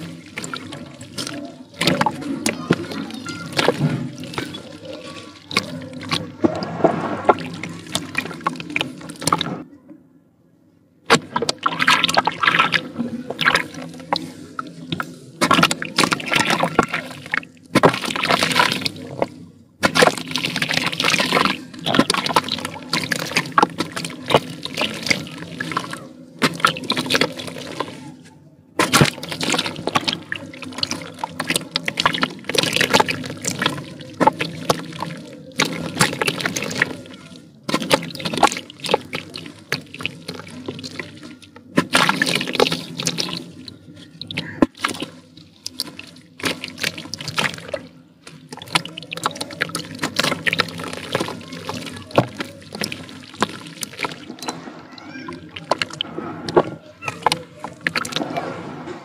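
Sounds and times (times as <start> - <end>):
dirt crumbling into water: 0.0 - 9.6, 11.1 - 28.0, 28.8 - 54.6, 55.2 - 58.8.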